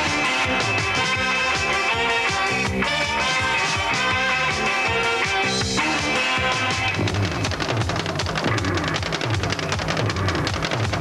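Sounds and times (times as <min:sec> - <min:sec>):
bass line: 0:00.0 - 0:11.0
rock band playing: 0:00.0 - 0:11.0.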